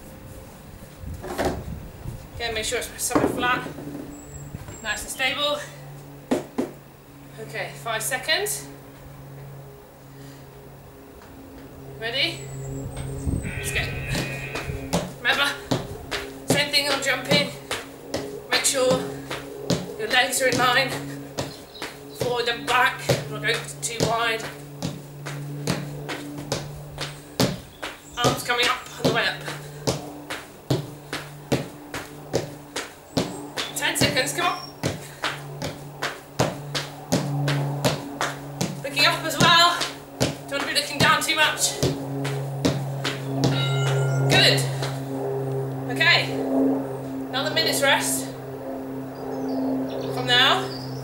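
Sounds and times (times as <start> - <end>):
feet landing on plastic step: 14.5 - 15.1, 19.7 - 19.9, 20.5 - 34.2, 34.8 - 38.8, 39.4 - 41.2, 41.8 - 43.6.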